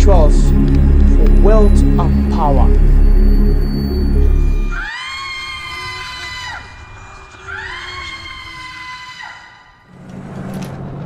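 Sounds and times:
low musical drone: 0:00.0 - 0:05.2
high-pitched swooping wails: 0:00.0 - 0:06.9.

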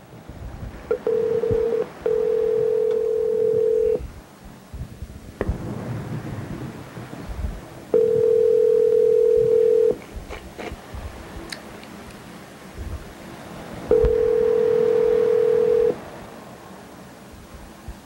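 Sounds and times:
telephone ringback tone: 0:00.9 - 0:04.0, 0:08.0 - 0:10.0, 0:13.9 - 0:16.0.

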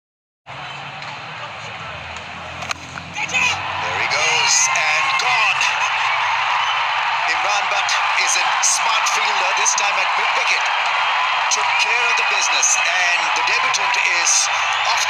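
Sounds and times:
crowd noise: 0:00.5 - 0:15.0
crowd shouting and cheering: 0:00.5 - 0:15.0.

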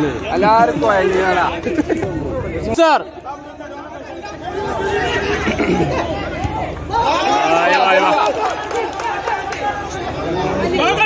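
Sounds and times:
spectators talking and calling out: 0:00.0 - 0:11.0.

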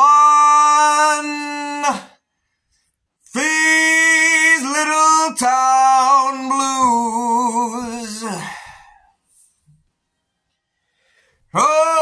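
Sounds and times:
man singing held note: 0:03.2 - 0:09.0, 0:11.5 - 0:12.0.

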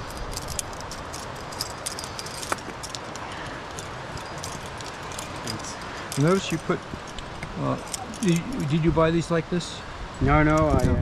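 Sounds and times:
carabiners clinking: 0:00.0 - 0:09.0
steady background hiss: 0:00.0 - 0:11.0.

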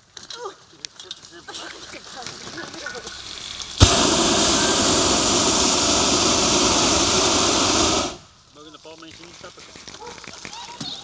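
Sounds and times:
propane burner blast: 0:03.7 - 0:08.4.

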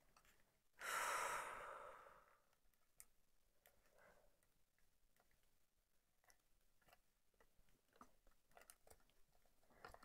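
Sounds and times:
woman sighing: 0:00.8 - 0:02.2.

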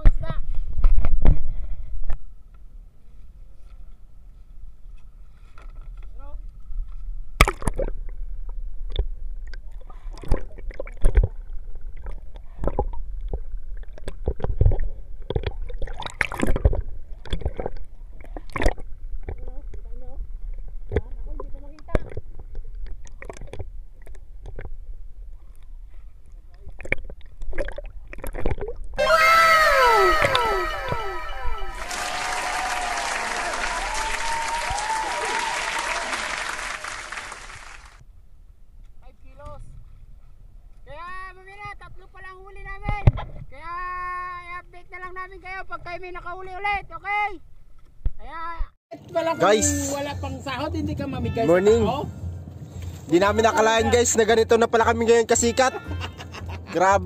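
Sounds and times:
low rumble of boat at sea: 0:01.4 - 0:36.3, 0:37.3 - 0:57.0
underwater clicks and crackle: 0:05.6 - 0:29.0
tones sliding down in pitch: 0:29.0 - 0:32.8.

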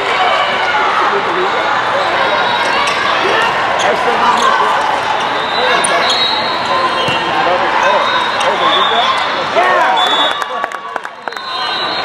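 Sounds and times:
spectators chattering: 0:00.0 - 0:12.0
players calling: 0:01.2 - 0:12.0
sneaker squeaks: 0:02.6 - 0:09.3.

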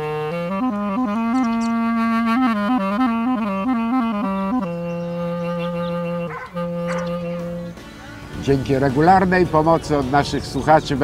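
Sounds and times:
solo clarinet: 0:00.0 - 0:07.8.

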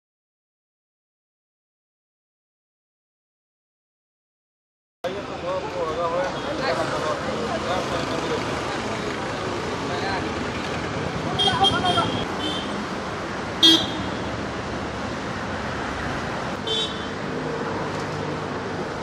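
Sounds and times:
street traffic: 0:05.0 - 0:19.0
voices: 0:05.1 - 0:12.6
vehicle horn toots: 0:11.4 - 0:12.7, 0:13.6 - 0:14.1.

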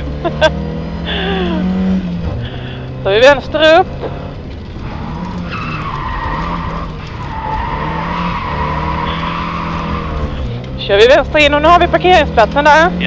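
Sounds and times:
rally car engine running hard: 0:00.0 - 0:13.0
tyres squealing on tarmac: 0:05.0 - 0:10.6.

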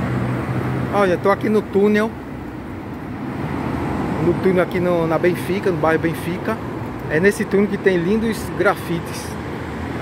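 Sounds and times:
car approaching through tunnel: 0:00.0 - 0:10.0
road traffic in underpass: 0:00.0 - 0:10.0.

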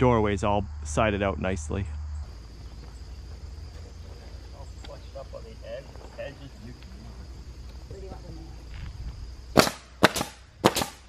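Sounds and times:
nail gun cracks: 0:09.6 - 0:11.0.

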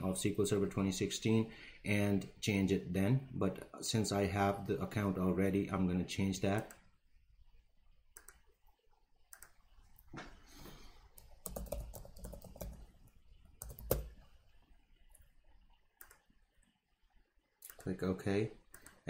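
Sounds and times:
keyboard typing: 0:08.1 - 0:08.5, 0:09.3 - 0:09.8, 0:11.1 - 0:14.2
mouse clicks: 0:08.2 - 0:08.4, 0:09.3 - 0:09.6, 0:16.0 - 0:16.3.

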